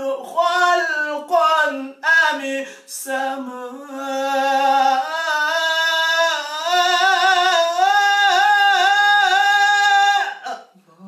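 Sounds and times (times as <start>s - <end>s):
man reciting in ornamented chant: 0.0s - 10.7s.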